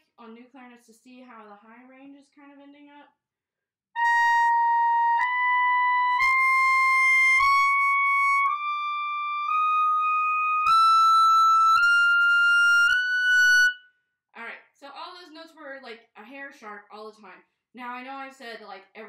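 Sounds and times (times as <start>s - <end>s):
clarinet playing held high notes: 4.0s - 13.9s.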